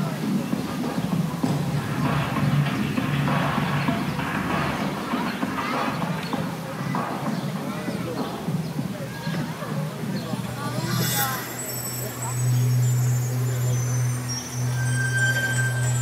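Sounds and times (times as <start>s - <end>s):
spectators chattering: 0.0s - 16.0s
music over loudspeakers: 0.1s - 11.6s.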